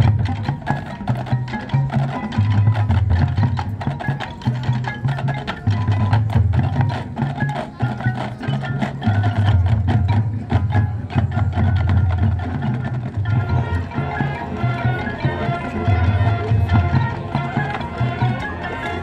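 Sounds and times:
mallet percussion: 0.0s - 19.0s
marching band playing: 0.0s - 19.0s
sharp percussion clicks and hits: 0.0s - 19.0s.

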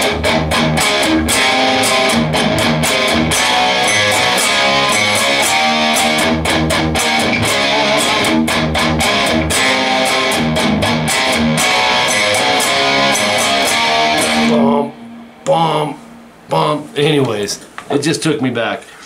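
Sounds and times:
electric guitar rock riff: 0.0s - 16.8s.

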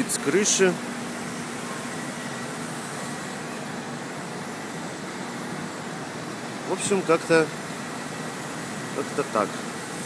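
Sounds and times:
city traffic noise: 0.0s - 10.0s
faint constant hum: 0.0s - 10.0s.

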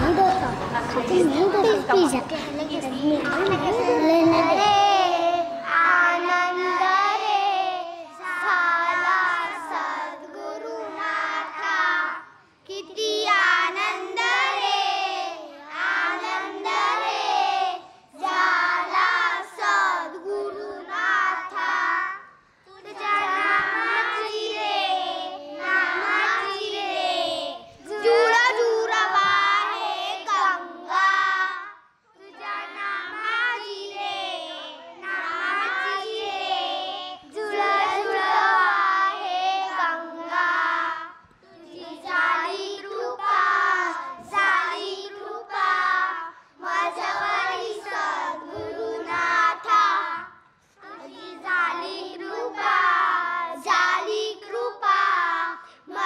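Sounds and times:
children singing devotional song: 1.4s - 56.0s.

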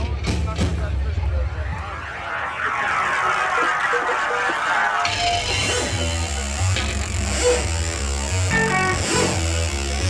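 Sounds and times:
electric guitar: 5.0s - 10.0s
live rock band: 5.0s - 10.0s
stepping bass line: 5.1s - 10.0s.

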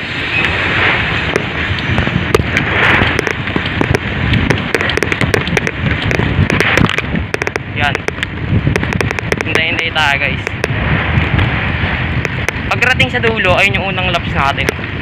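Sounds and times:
wind buffeting microphone: 0.0s - 15.0s
microphone crackles and clicks: 0.4s - 15.0s.

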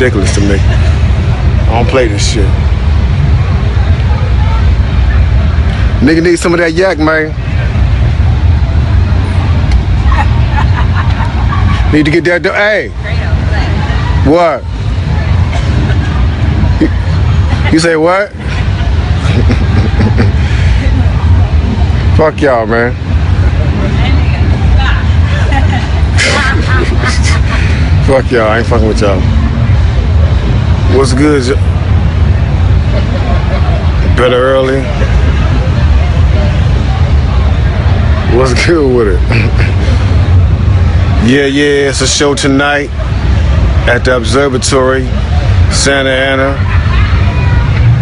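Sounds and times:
loud low rumble: 0.0s - 17.7s, 18.3s - 48.0s
faint voices: 0.0s - 48.0s.

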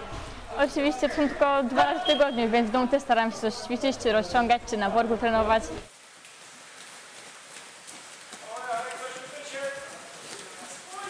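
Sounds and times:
bare feet running on gym mat: 5.9s - 11.0s.

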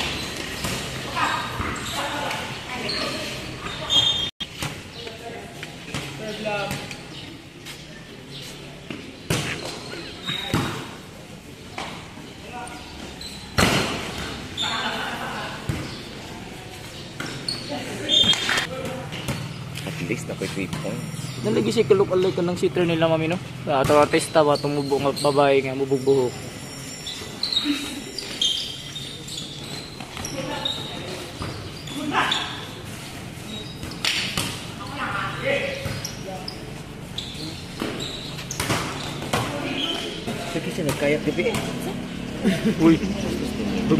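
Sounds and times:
chatter of people: 39.0s - 43.9s.

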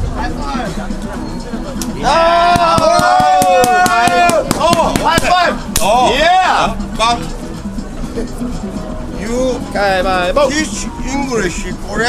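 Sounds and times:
low chatter: 0.0s - 12.0s
hand slaps: 1.8s - 6.0s
man shouting: 2.0s - 5.5s.

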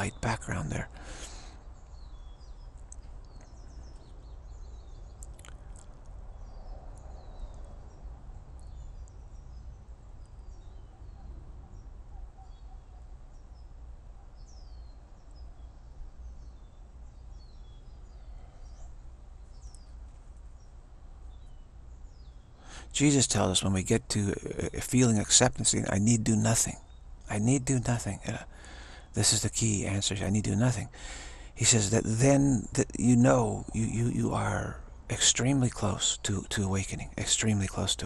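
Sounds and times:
small birds chirping: 0.0s - 38.0s
steady low background noise: 0.0s - 38.0s.

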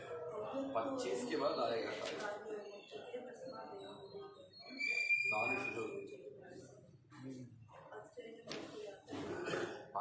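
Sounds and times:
man clearing throat: 9.1s - 10.0s.

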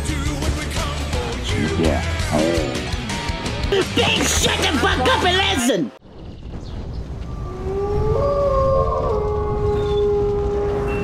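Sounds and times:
higher wolf howl: 7.3s - 11.0s
wolf howling: 7.3s - 11.0s.

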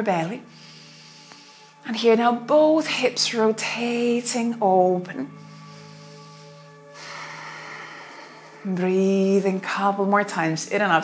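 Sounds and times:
soft background music: 0.0s - 11.0s
breathy hiss: 0.4s - 1.9s, 5.3s - 8.8s.

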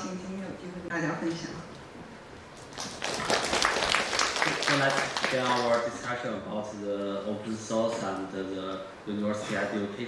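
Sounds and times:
audience clapping: 2.6s - 6.0s.

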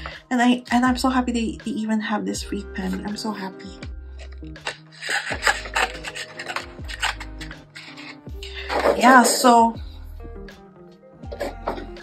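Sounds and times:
background music with low notes: 0.0s - 12.0s
rubbing and rustling handling noises: 4.2s - 9.6s.

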